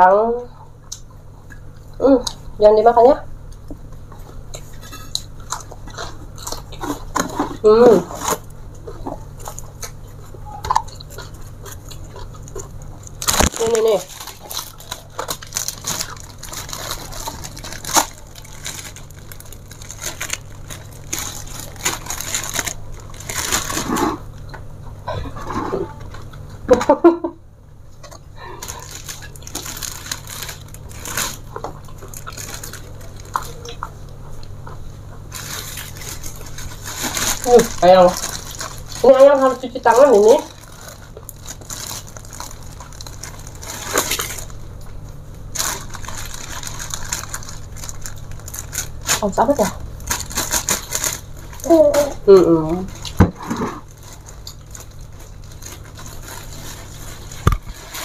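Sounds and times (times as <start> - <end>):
steady low hum: 0.0 - 58.0
chewing and mouth sounds: 3.5 - 24.6, 27.9 - 36.9.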